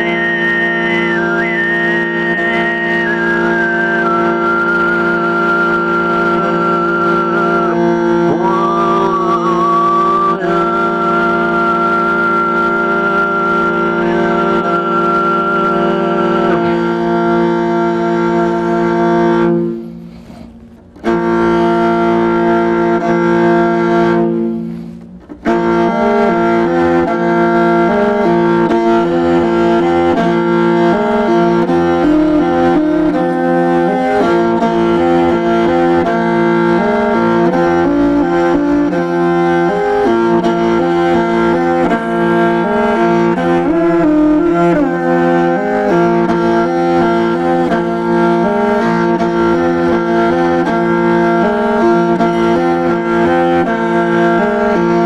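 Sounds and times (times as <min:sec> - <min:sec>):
bowed fiddle melody: 0:00.0 - 0:55.0.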